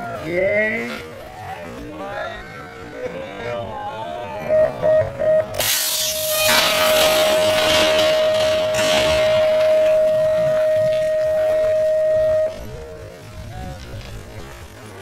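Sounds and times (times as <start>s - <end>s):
slowed start-gate beeps: 4.4s - 13.0s
rushing clatter of bikes: 5.6s - 11.9s, 12.6s - 15.0s.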